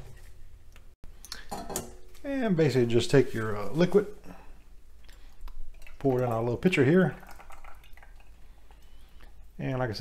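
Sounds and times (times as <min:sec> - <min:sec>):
kitchen utensils and dishes clinking: 0:01.4 - 0:02.1.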